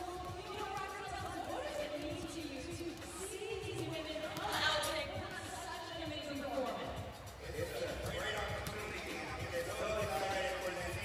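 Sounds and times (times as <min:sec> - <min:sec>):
basketballs bouncing: 0:00.0 - 0:11.0
music with vocals over loudspeakers: 0:00.0 - 0:11.0.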